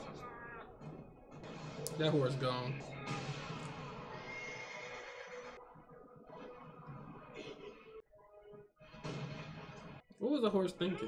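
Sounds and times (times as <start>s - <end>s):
faint horse whinnying: 4.1s - 5.6s.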